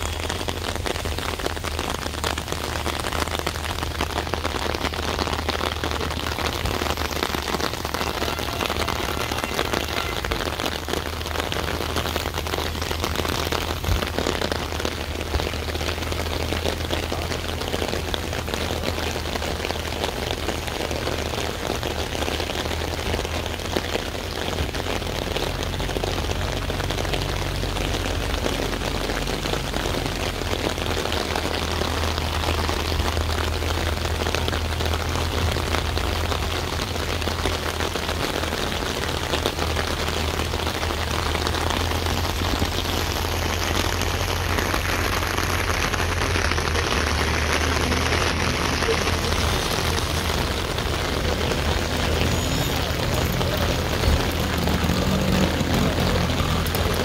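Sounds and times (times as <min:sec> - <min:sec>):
rain pattering on surfaces: 0:00.0 - 0:57.0.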